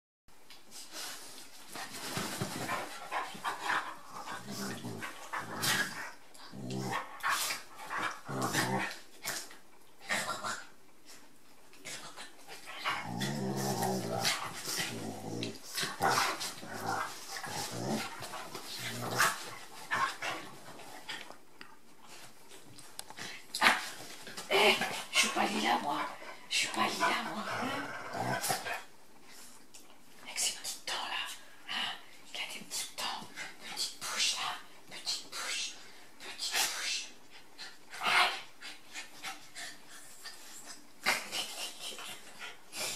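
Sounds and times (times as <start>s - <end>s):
dogs play growling: 0.9s - 30.0s, 36.2s - 42.9s.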